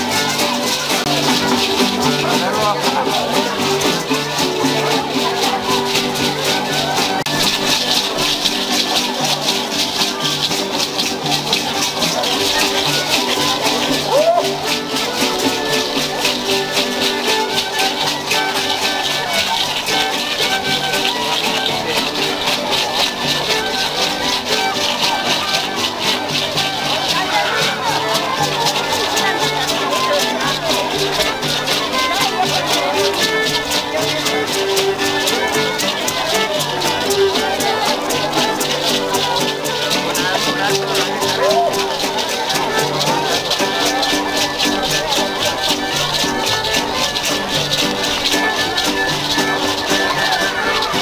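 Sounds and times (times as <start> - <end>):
hand rattles shaken: 0.0 - 51.0
violin and guitar dance tune: 0.0 - 51.0.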